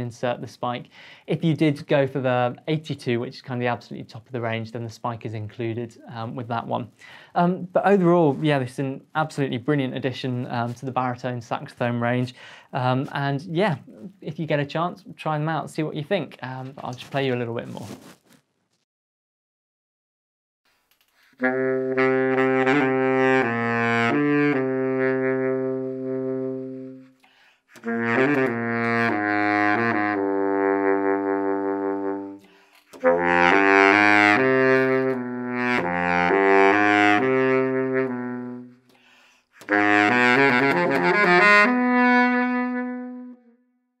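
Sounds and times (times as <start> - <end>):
baritone saxophone solo: 21.3 - 43.6.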